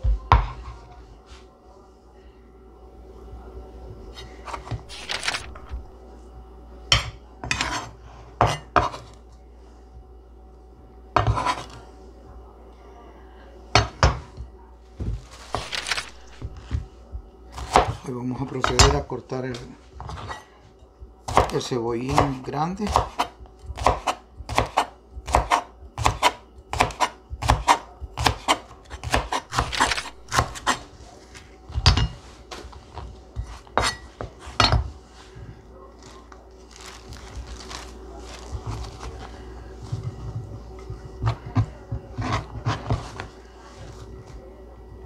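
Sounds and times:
knife chopping on plastic board: 11.2 - 11.7, 17.6 - 18.0, 21.3 - 30.8, 40.9 - 43.3.

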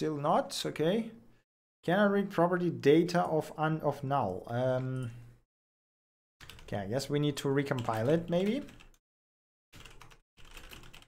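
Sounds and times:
typing on computer keyboard: 6.4 - 6.7, 7.7 - 9.0, 9.8 - 11.0.

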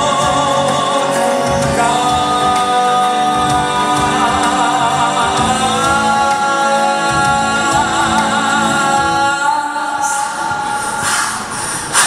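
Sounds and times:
man singing into a microphone: 0.0 - 11.6
musical accompaniment: 0.0 - 12.0.

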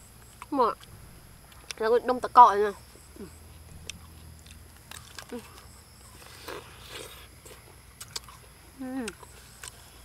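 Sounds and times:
people chewing and sucking fruit: 0.0 - 1.8, 2.8 - 10.0.

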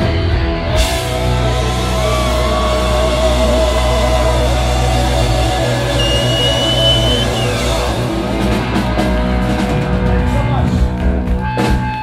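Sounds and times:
distorted electric guitar: 0.0 - 12.0
live rock band: 0.0 - 12.0.

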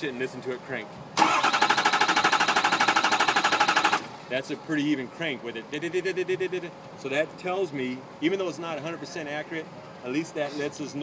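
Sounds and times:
diesel engine cranking: 1.2 - 4.3.

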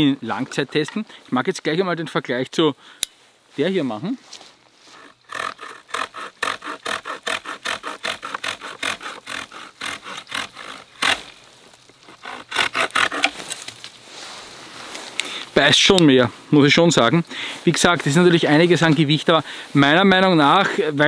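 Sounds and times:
hand saw rasping through wood: 5.0 - 11.3, 12.1 - 13.5.

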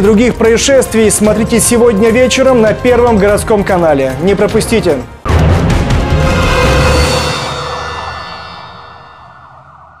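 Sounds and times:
tv ident sting with siren wail: 6.2 - 10.0.

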